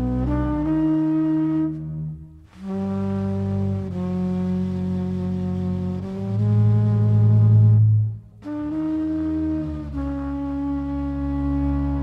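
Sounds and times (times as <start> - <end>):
double bass line: 0.0 - 12.0.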